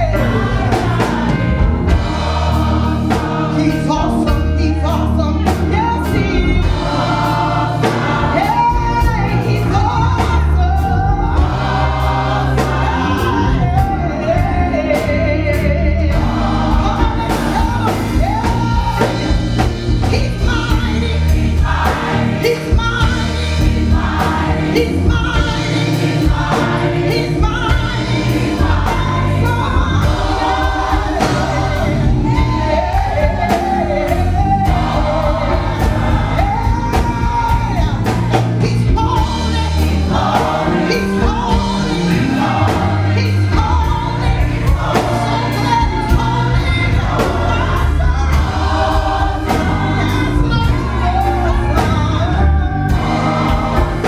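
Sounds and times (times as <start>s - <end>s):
gospel choir singing: 0.0s - 54.0s.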